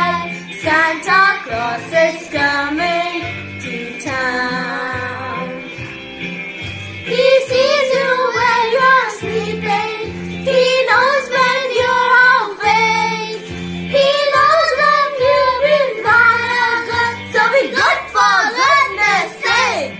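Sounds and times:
girl and boy singing: 0:00.0 - 0:05.7, 0:07.1 - 0:19.9
backing track with bass line: 0:00.0 - 0:19.9.

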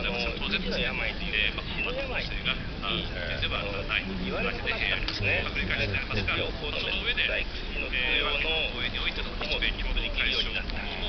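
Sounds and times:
speech from tv speaker: 0:00.0 - 0:11.0.

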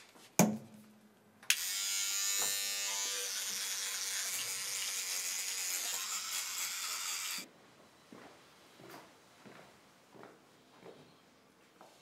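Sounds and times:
electric toothbrush buzzing: 0:01.5 - 0:07.5.

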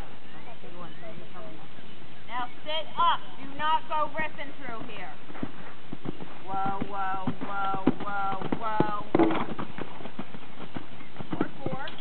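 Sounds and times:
horse hoofbeats on sand: 0:04.1 - 0:12.0.

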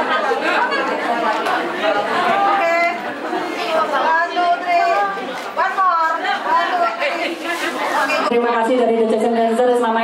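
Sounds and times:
voices chattering in a hall: 0:00.0 - 0:10.0.

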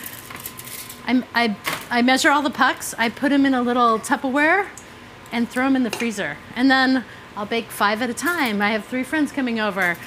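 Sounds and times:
woman talking: 0:01.1 - 0:10.0.

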